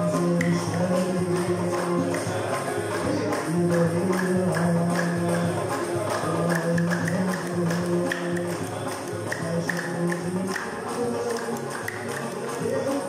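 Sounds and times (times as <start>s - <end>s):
oud banjos and guitar playing: 0.0s - 13.0s.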